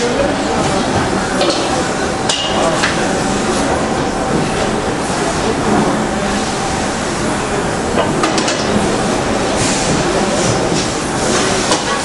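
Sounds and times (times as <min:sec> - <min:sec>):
loud workshop noise: 0:00.0 - 0:12.0.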